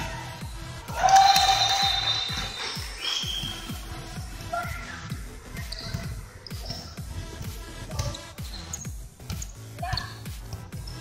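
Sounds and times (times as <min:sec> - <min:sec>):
music: 0:00.0 - 0:11.0
shoes on wooden court: 0:00.0 - 0:11.0
basketball bouncing: 0:05.5 - 0:11.0.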